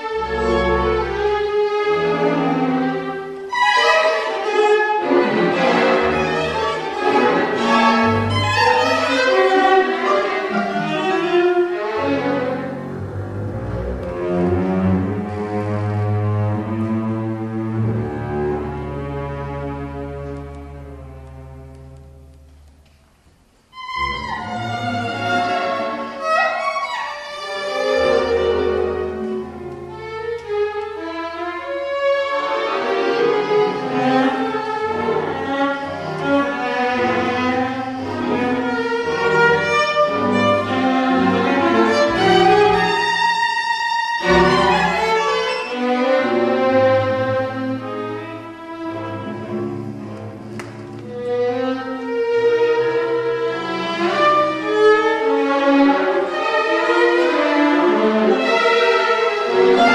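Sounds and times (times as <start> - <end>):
solo viola: 0.0 - 22.4, 23.6 - 59.9
string orchestra playing: 0.0 - 22.7, 23.6 - 59.9.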